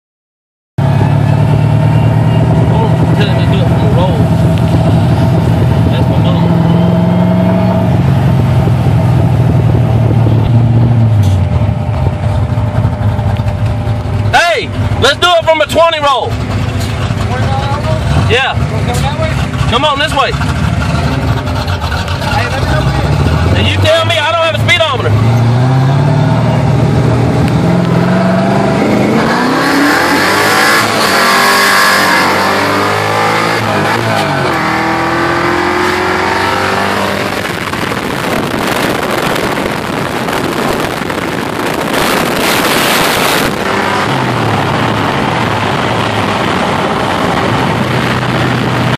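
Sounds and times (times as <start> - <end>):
car engine at full throttle: 0.8 - 48.9
wind and road noise: 0.8 - 48.9.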